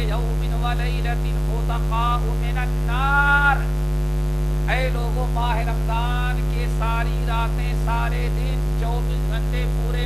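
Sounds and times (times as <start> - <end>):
man's drawn-out vowel: 0.0 - 3.8
low electrical mains hum: 0.0 - 10.0.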